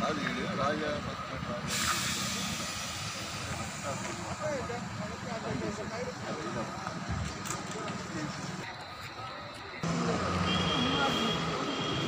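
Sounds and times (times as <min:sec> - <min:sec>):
tyre hiss and road noise: 0:00.0 - 0:12.0.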